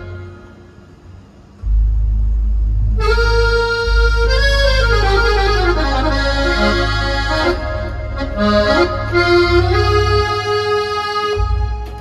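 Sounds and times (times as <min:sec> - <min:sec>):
keyboard melody: 0:00.0 - 0:00.8, 0:01.6 - 0:12.0
low synth bass note: 0:00.0 - 0:12.0.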